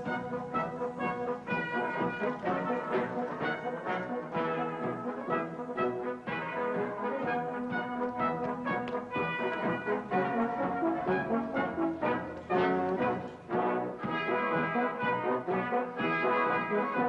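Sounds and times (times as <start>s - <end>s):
brass band playing: 0.0s - 17.0s.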